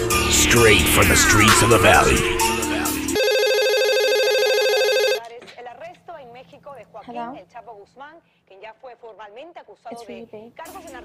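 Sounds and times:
music: 0.0 - 5.2, 10.0 - 11.0
desk telephone ringing: 3.2 - 5.2.

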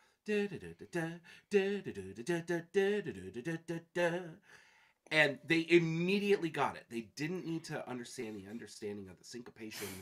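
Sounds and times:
man singing wordless melody: 0.0 - 4.5.

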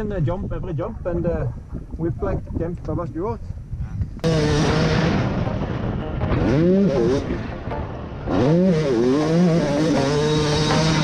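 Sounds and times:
motocross engine revving high: 4.2 - 11.0.

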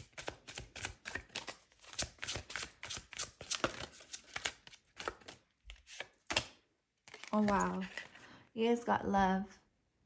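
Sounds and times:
cards shuffling: 0.0 - 8.3.

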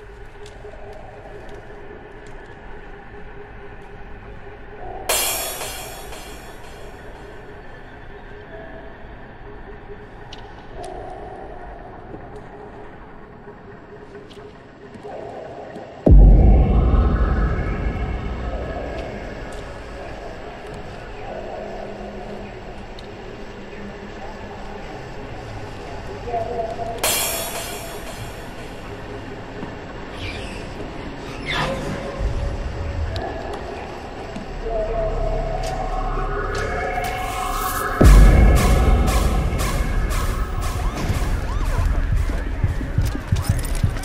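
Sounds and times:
steady low drone: 0.0 - 30.1, 31.9 - 44.0
hissing hit: 5.1 - 7.2, 16.1 - 20.6, 27.0 - 28.9, 35.8 - 43.0
harsh noisy swell: 16.1 - 20.6, 34.0 - 43.4.

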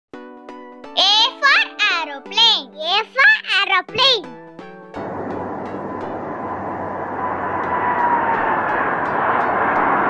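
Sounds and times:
thin engine whine: 4.9 - 10.0
jet engines roaring at takeoff: 5.0 - 10.0.

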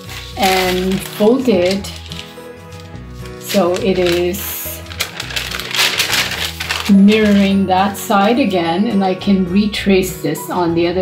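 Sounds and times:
paper crinkling: 0.0 - 7.6.

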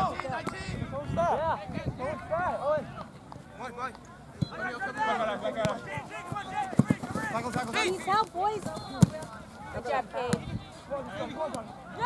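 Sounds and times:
voices calling and shouting: 0.0 - 12.0
soccer ball being kicked: 5.6 - 7.9, 8.6 - 9.4.

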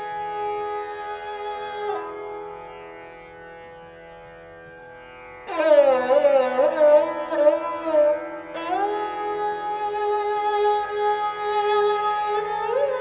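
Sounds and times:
plucked string instrument: 5.4 - 13.0.

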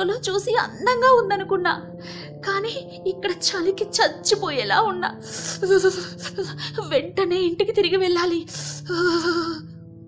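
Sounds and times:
soft background music: 0.0 - 10.0
woman sighing: 8.8 - 9.6.

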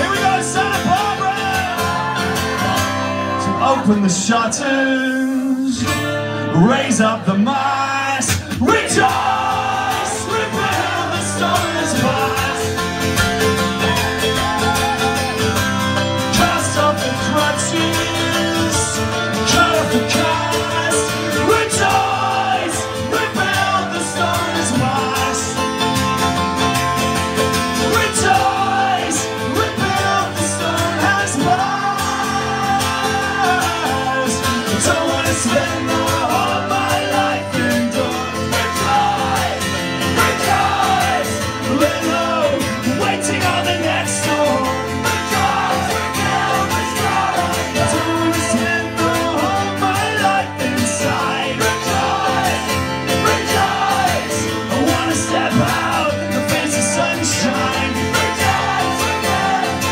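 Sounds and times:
men singing: 0.0 - 59.9
strummed acoustic guitars: 0.0 - 59.9.

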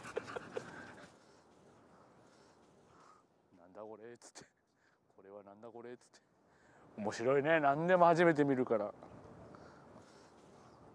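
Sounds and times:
puppy panting: 0.0 - 2.6.

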